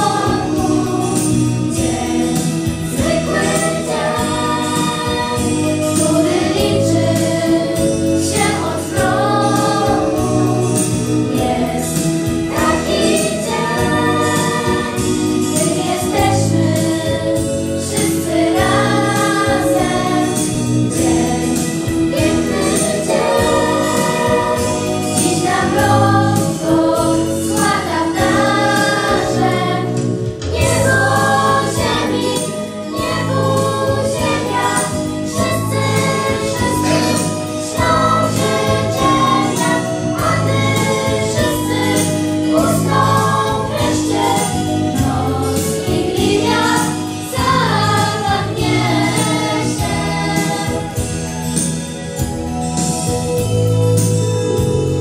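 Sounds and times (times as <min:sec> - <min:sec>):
children singing a carol: 0:00.0 - 0:51.1
instrumental backing music: 0:00.0 - 0:55.0.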